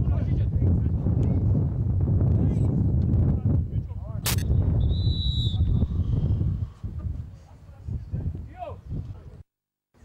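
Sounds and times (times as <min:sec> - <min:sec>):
referee's whistle blast: 0:04.6 - 0:05.9.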